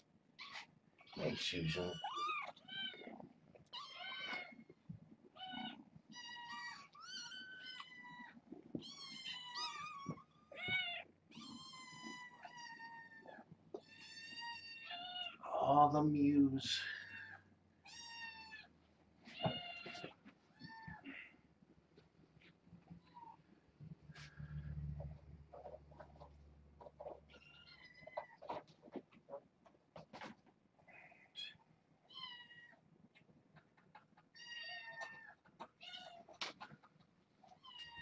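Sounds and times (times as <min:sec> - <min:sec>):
kittens meowing: 0:00.4 - 0:04.7, 0:05.3 - 0:15.4
person speaking: 0:15.4 - 0:17.0.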